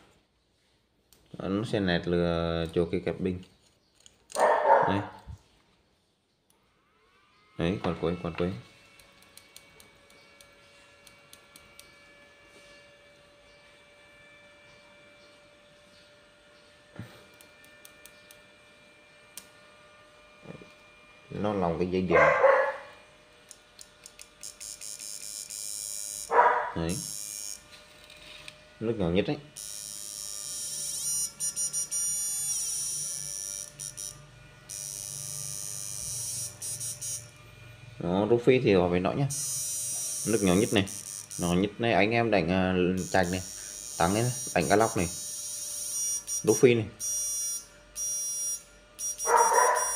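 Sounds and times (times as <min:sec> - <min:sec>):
inverter humming with high whine: 0:06.5 - 0:49.9
high-pitched electronic whine: 0:29.5 - 0:49.9.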